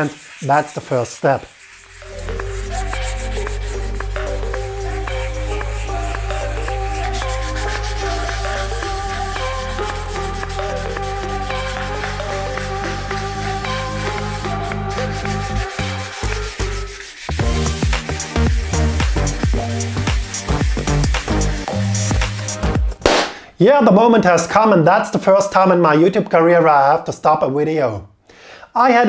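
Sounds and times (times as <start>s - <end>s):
sandpaper rubbing on metal tube: 0.0s - 22.8s
electronic music: 0.0s - 23.2s.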